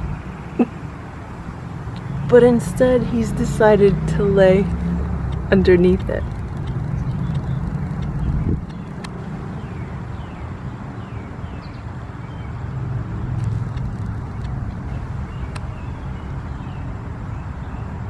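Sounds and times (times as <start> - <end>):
road traffic rumble: 0.0 - 18.0
vehicle passing: 0.0 - 18.0.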